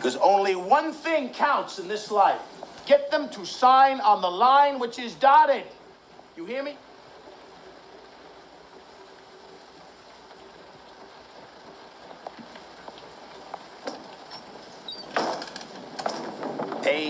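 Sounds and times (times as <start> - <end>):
film soundtrack through speaker: 0.0 - 17.0.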